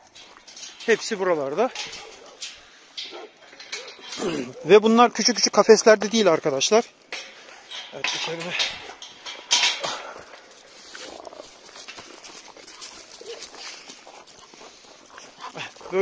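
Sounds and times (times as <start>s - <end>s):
metal gate clank: 0.2s - 5.9s, 7.1s - 10.2s
footsteps crunching on gravel: 8.2s - 16.0s
dogs vocalizing: 10.2s - 16.0s.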